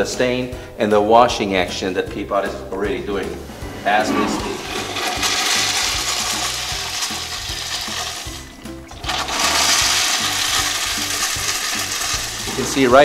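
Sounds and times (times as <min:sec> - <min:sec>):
urinal flushing: 0:03.4 - 0:13.0.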